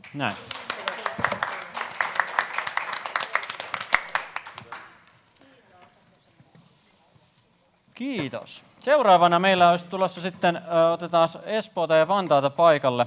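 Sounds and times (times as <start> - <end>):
people clapping: 0.0 - 5.3.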